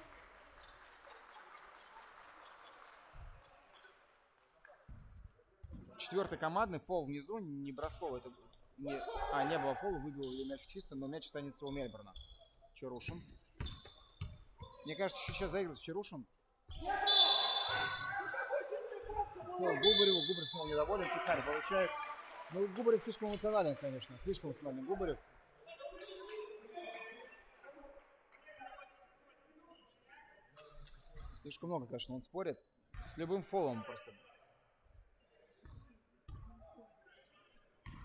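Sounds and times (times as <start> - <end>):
players' voices: 5.8 - 12.2, 14.8 - 29.0
referee's whistle blast: 17.0 - 18.1, 19.7 - 20.7.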